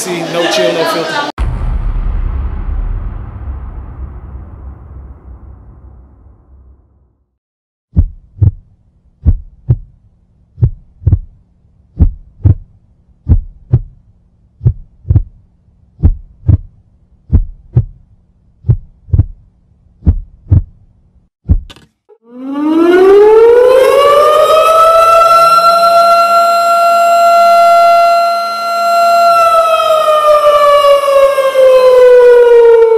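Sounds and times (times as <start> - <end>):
heartbeat double thump: 7.9 - 8.6, 9.2 - 10.0, 10.6 - 11.4, 12.0 - 14.0, 14.6 - 15.4, 16.0 - 18.0, 18.6 - 19.4, 20.0 - 20.8, 21.4 - 21.8
air-raid siren wailing: 22.2 - 32.9.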